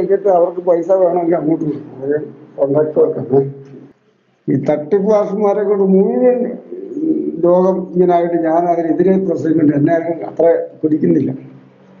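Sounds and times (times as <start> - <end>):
man talking on phone call: 0.0 - 3.8, 4.4 - 11.4.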